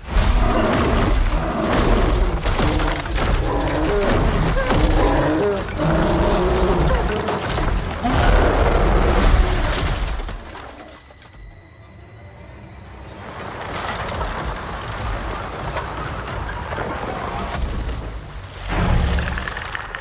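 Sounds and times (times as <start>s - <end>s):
thin high ringing tone: 10.7s - 13.7s.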